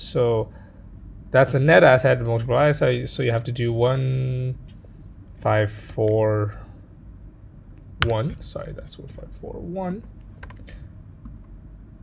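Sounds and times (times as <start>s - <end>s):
keyboard keystrokes: 8.0s - 8.2s, 10.4s - 10.6s.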